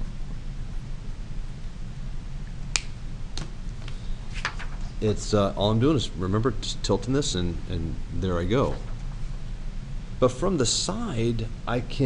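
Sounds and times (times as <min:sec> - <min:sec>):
steady low hum: 0:00.0 - 0:12.0
paper rustling: 0:03.8 - 0:05.0, 0:08.6 - 0:09.2.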